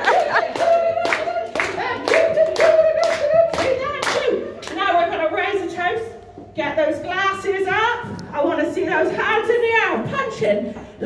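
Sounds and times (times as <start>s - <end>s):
people clapping in unison: 0.0s - 4.8s.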